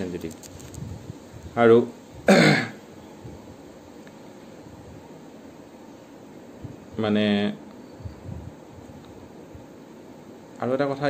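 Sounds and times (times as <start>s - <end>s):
man clearing throat: 2.3s - 2.8s.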